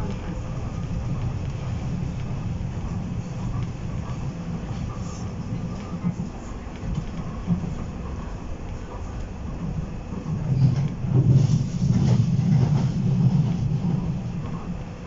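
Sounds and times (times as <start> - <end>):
train car rattles: 0.0 - 15.0
train wheels rumbling: 0.0 - 15.0.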